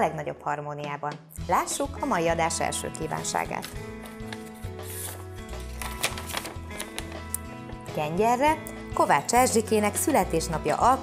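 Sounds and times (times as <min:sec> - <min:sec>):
background music with chords: 0:01.3 - 0:11.0
paper rustling: 0:03.4 - 0:07.3.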